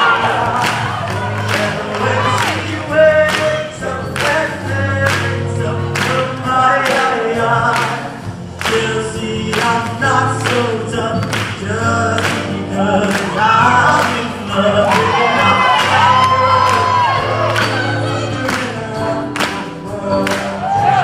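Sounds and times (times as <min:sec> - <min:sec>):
choir singing: 0:00.0 - 0:04.9, 0:12.6 - 0:21.0
amplified lead voice: 0:00.0 - 0:21.0.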